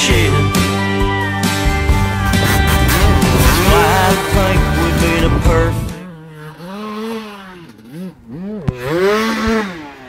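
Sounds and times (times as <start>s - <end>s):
dirt bike engine revving: 1.7s - 10.0s.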